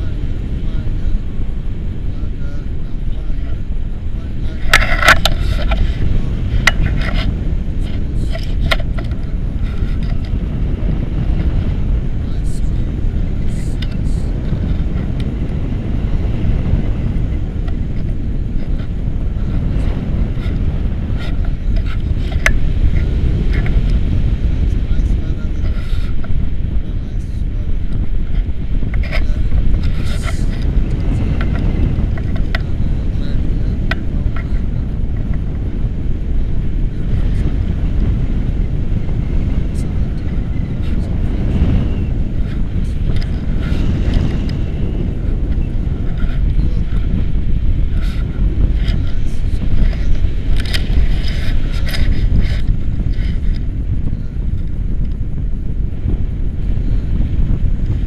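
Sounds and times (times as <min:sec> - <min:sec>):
wind noise on microphone: 0:00.0 - 0:58.0.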